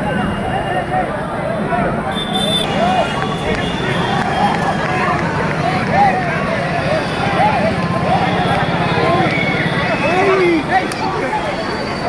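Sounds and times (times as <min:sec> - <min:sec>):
crowd chanting: 0:01.8 - 0:12.0.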